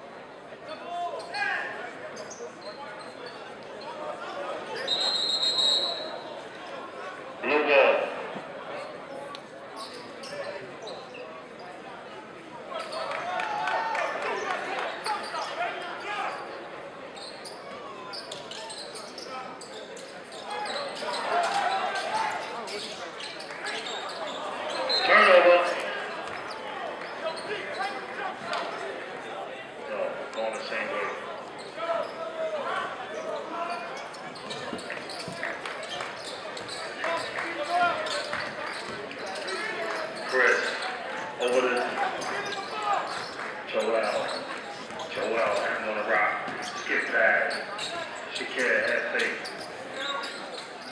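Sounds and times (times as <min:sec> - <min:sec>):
crowd chatter and calls: 0:00.0 - 0:50.9.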